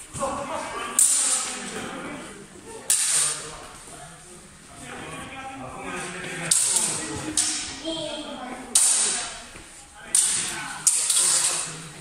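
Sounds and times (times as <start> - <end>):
steel swords clashing: 8.7 - 9.3, 10.2 - 11.7.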